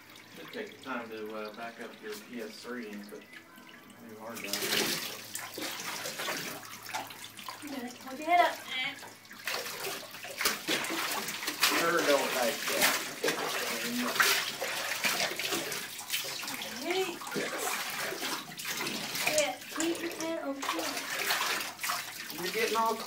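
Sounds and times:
water splashing in a bathtub: 0:00.0 - 0:23.0.

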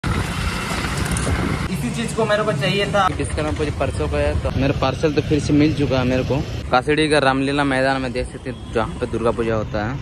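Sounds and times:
road and wind noise: 0:00.0 - 0:10.0.

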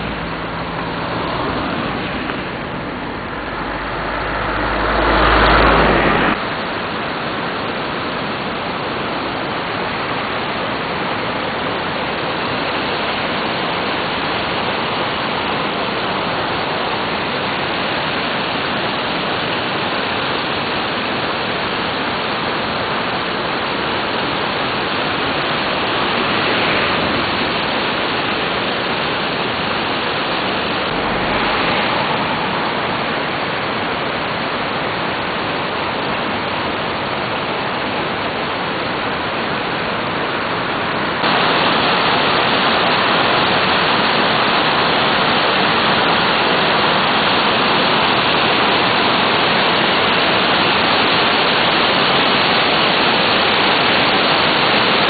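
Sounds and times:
river rushing: 0:00.0 - 0:55.0.

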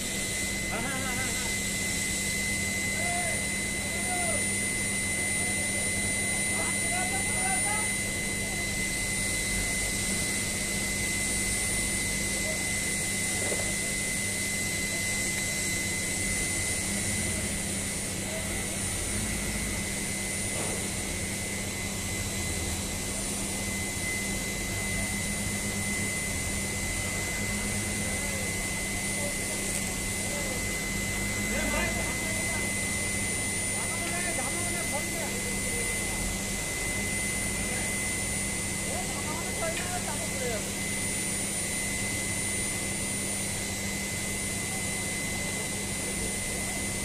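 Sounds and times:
constant high whine: 0:00.0 - 0:47.0.

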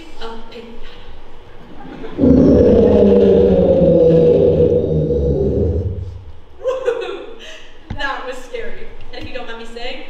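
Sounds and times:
person roaring like an ogre: 0:01.7 - 0:06.4.

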